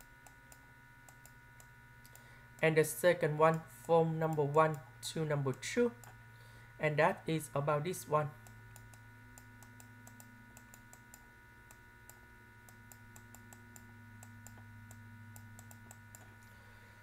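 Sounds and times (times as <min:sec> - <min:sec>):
low electrical hum: 0:00.0 - 0:17.0.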